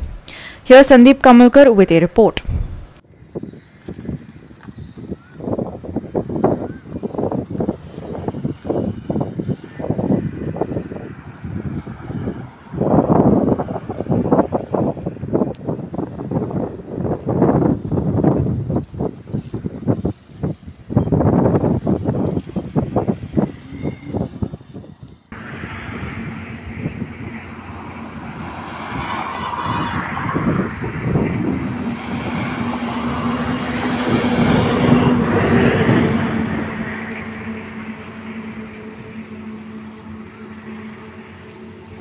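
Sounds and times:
highway traffic hum: 0:00.0 - 0:42.0
vehicles passing: 0:00.0 - 0:42.0
wind buffeting microphone: 0:00.0 - 0:42.0.

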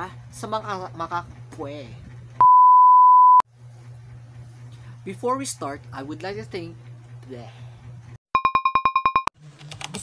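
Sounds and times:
censor bleep tone: 0:02.4 - 0:03.4.

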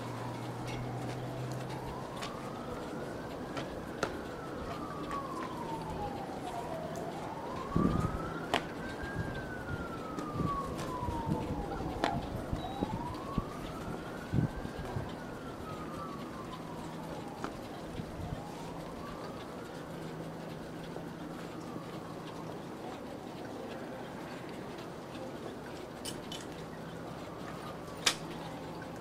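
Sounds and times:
emergency siren wailing: 0:00.0 - 0:29.0
street noise: 0:00.0 - 0:29.0.

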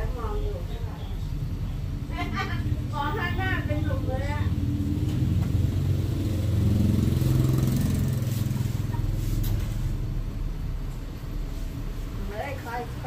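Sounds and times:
vehicle engine rumble passing: 0:00.0 - 0:13.0.

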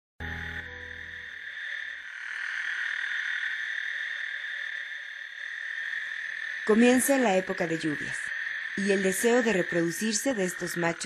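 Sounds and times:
toads trilling in chorus: 0:00.3 - 0:11.0.

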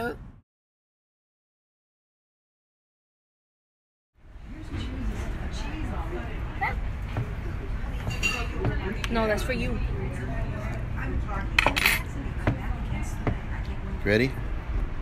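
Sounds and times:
background chatter of voices: 0:04.2 - 0:15.0
cutlery and plates clinking: 0:08.0 - 0:08.8, 0:11.6 - 0:12.2.

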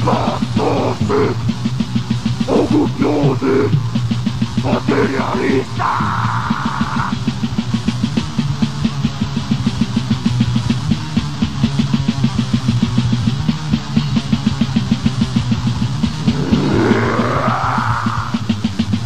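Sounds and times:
distorted guitar riff: 0:00.0 - 0:19.0
fast drumming: 0:00.0 - 0:19.0.

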